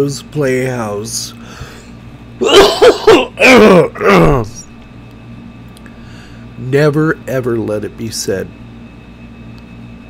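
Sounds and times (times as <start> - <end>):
man coughing: 2.4 - 4.6.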